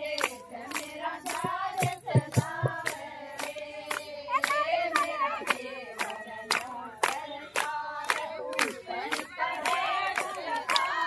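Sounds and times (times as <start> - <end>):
rhythmic handclaps: 0.0 - 11.0
women singing in unison: 0.0 - 11.0.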